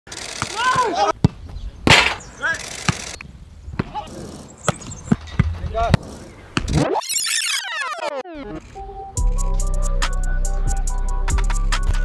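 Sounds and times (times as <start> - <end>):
players shouting: 0.4 - 1.2.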